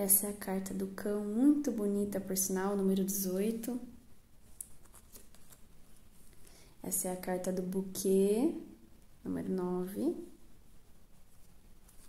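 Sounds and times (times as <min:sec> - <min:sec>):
woman speaking: 0:00.0 - 0:04.0, 0:06.8 - 0:10.4
card rustling: 0:04.4 - 0:06.3, 0:11.3 - 0:12.0.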